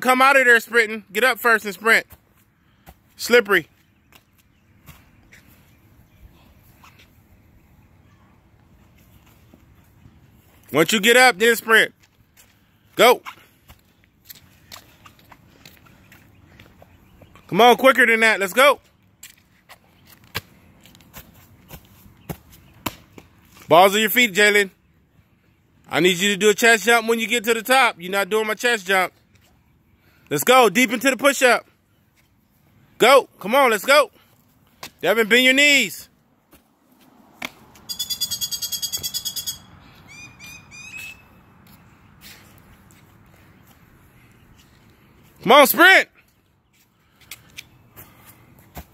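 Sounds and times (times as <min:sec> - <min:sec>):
man shouting: 0:45.4 - 0:46.2.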